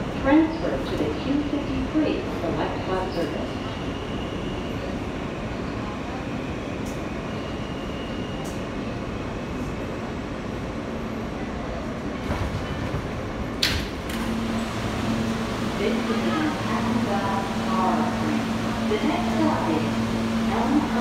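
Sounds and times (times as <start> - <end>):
subway train rumbling: 0.0 - 21.0.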